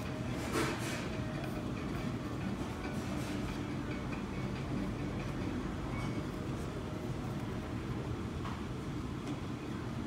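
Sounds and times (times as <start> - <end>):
restaurant dining room rumble: 0.0 - 10.0.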